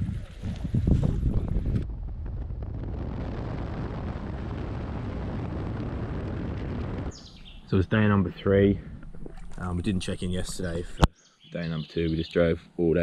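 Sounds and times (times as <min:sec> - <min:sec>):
wind on microphone: 0:00.0 - 0:07.8.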